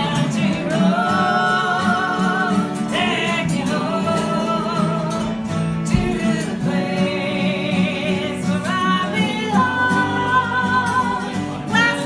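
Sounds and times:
people singing together: 0.0s - 12.0s
strummed acoustic guitars: 0.0s - 12.0s.

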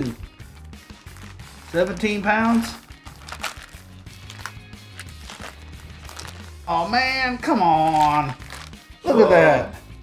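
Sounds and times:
background music with low bass: 0.0s - 10.0s
plastic bag crinkling: 0.9s - 6.8s, 7.8s - 8.8s.

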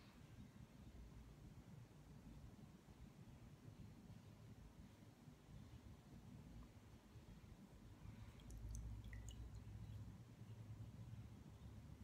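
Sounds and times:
low steady hum: 0.0s - 12.0s
faint wet clicks: 8.0s - 10.1s.

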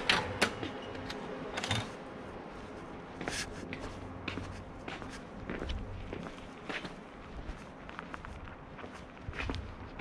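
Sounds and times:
footsteps on pavement: 2.5s - 10.0s.

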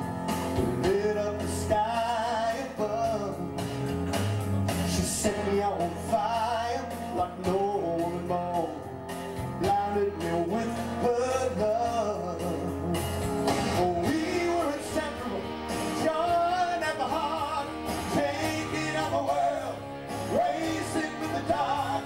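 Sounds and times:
guitar: 0.0s - 22.0s
rock backing track: 0.0s - 22.0s
man singing: 0.5s - 3.8s, 4.7s - 22.0s.

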